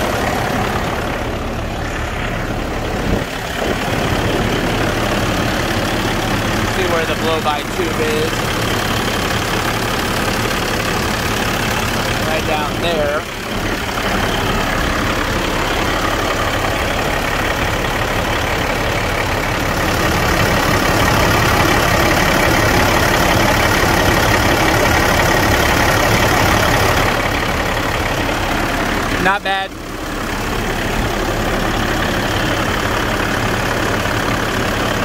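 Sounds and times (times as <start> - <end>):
diesel engine idling: 0.0 - 35.0.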